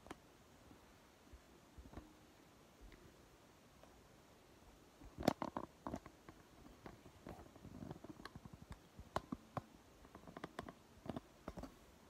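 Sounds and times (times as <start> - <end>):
soft rustling: 5.0 - 11.9.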